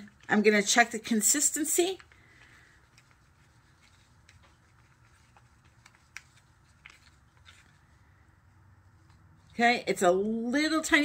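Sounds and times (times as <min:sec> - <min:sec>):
stick stirring paint in cup: 0:01.8 - 0:08.0.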